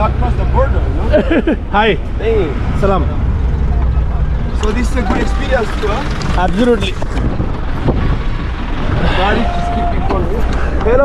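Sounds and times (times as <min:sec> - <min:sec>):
car engine and road rumble: 0:00.0 - 0:11.0
wind buffeting microphone: 0:05.1 - 0:10.9.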